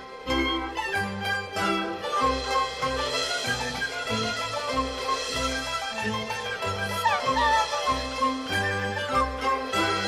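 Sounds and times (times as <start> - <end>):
opera ensemble instrumental music: 0.0 - 10.0.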